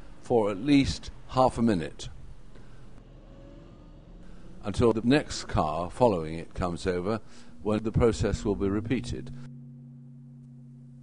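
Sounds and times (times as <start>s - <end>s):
car engine humming: 2.3s - 11.0s.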